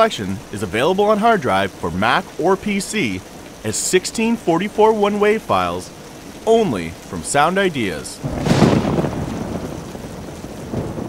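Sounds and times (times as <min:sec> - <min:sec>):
rain-like hiss: 0:00.0 - 0:11.0
rolling thunder: 0:08.2 - 0:11.0.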